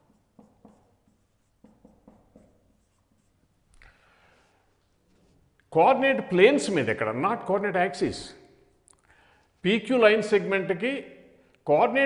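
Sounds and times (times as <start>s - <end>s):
marker scratching on whiteboard: 0.0s - 3.7s.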